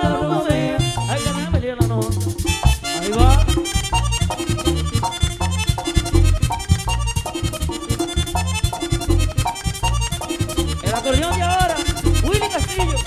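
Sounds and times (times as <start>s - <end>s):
accordion-led band playing: 0.0s - 13.0s
bass pulsing: 0.0s - 13.0s.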